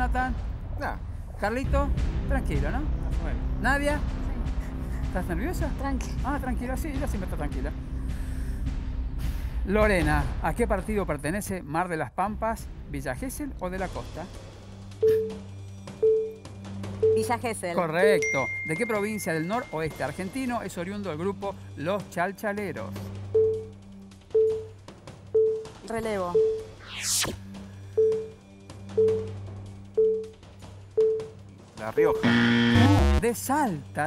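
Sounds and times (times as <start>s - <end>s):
falling whoosh effect: 26.8s - 27.4s.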